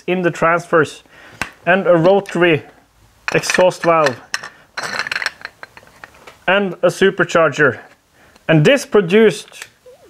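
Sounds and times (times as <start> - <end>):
metal parts clinking: 3.3 - 6.2.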